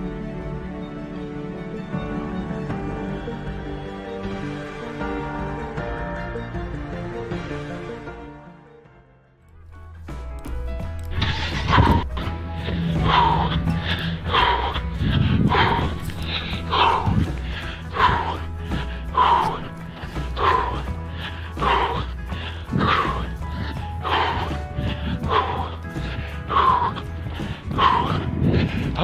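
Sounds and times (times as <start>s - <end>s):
man panting while running: 10.9s - 29.0s.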